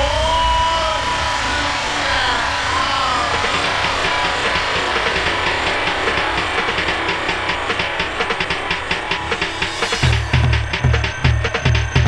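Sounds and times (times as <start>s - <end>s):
noisy electronic build-up: 0.0s - 12.0s
fast percussive ticks: 3.4s - 12.0s.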